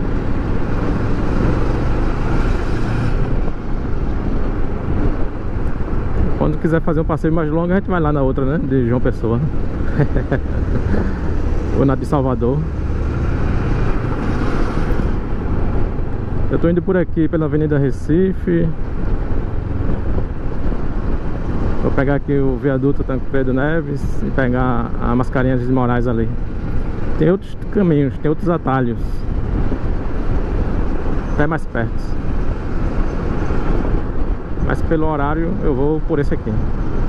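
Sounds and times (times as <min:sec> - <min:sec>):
motorcycle engine: 0:00.0 - 0:06.4, 0:09.5 - 0:16.6
wind noise on microphone: 0:00.0 - 0:37.0.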